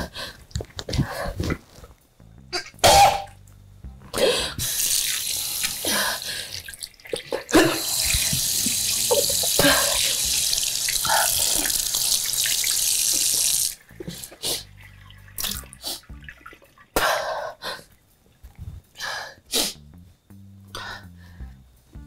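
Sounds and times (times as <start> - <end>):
person retching and coughing: 2.5 - 3.4, 7.2 - 8.0, 8.9 - 10.2, 17.0 - 17.4
water tap running: 4.6 - 17.0.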